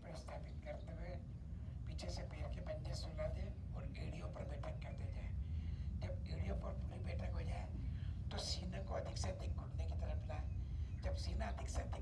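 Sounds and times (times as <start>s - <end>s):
steady low background noise: 0.0s - 12.0s.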